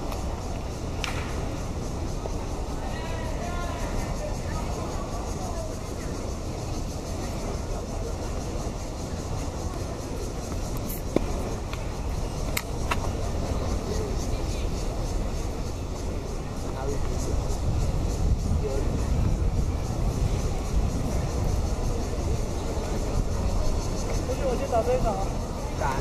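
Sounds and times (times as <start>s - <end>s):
open-air background rumble: 0.0s - 26.0s
tennis balls struck by racquets: 1.0s - 1.6s.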